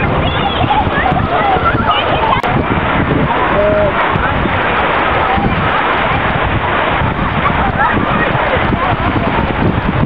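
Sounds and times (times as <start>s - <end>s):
people's voices and calls: 0.0s - 10.0s
water rushing down a chute: 0.0s - 10.0s.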